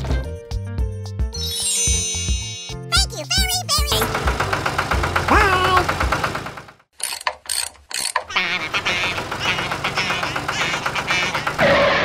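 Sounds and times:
tractor engine idling: 0:03.3 - 0:06.9, 0:08.4 - 0:11.8.

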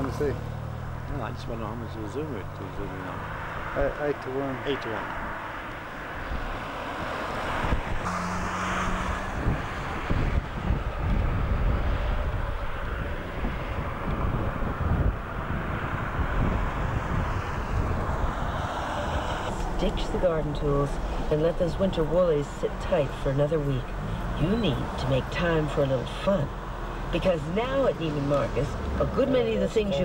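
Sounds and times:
wind buffeting microphone: 0:06.2 - 0:08.1, 0:08.8 - 0:21.1.

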